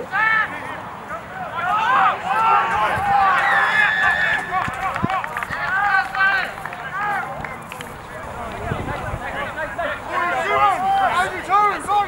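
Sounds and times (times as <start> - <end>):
people shouting: 1.1 - 7.3, 9.5 - 12.0.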